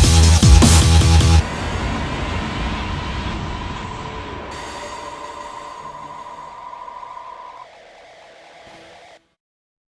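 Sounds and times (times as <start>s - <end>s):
rumbling hissing noise: 1.4s - 9.2s
steady high tone: 1.4s - 9.2s.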